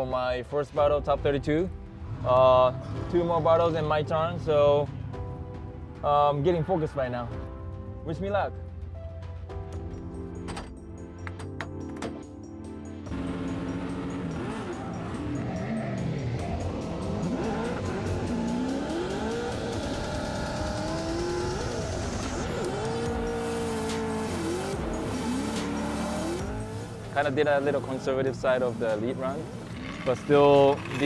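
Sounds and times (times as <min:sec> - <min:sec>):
background music: 0:00.0 - 0:31.0
car engines revving hard: 0:02.0 - 0:05.4, 0:13.1 - 0:31.0.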